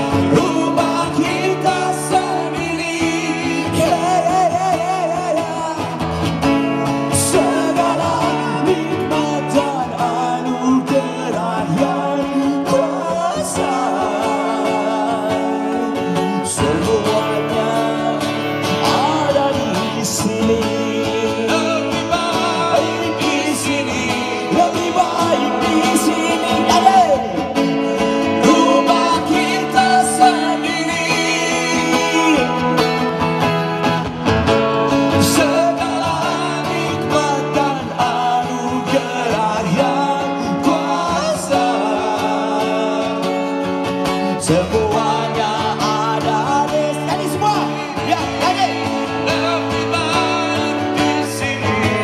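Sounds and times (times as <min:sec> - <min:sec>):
guitars: 0:00.0 - 0:52.0
person singing: 0:00.0 - 0:52.0.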